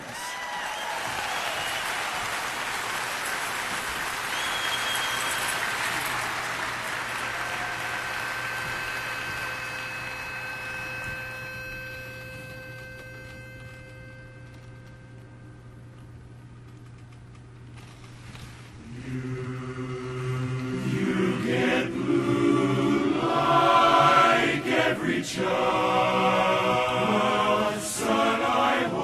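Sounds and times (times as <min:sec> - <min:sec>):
audience applauding: 0:00.0 - 0:11.2.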